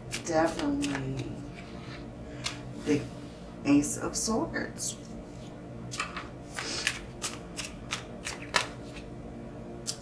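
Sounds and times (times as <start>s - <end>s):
card snaps and rustles: 6.0s - 9.0s.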